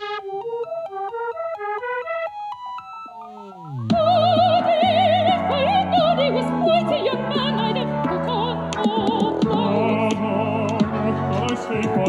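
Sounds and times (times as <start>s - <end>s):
synthesizer notes sliding down: 0.0s - 6.6s.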